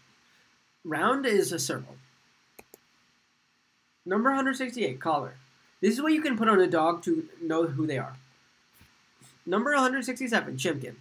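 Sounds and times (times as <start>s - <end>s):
short clicks: 2.6s - 2.9s.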